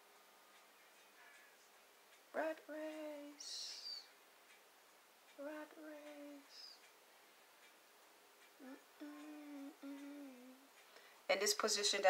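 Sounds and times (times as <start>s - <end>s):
woman humming: 2.4s - 4.1s, 5.4s - 6.8s, 8.6s - 10.7s.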